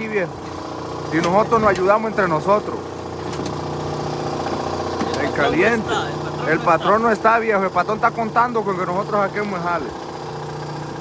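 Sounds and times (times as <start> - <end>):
air compressor humming: 0.2 - 8.3.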